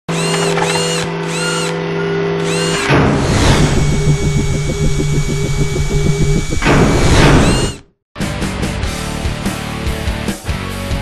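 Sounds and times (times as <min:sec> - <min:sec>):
mechanical servo whirs: 0:00.1 - 0:01.8, 0:02.4 - 0:07.9
electronic hum: 0:02.5 - 0:07.8.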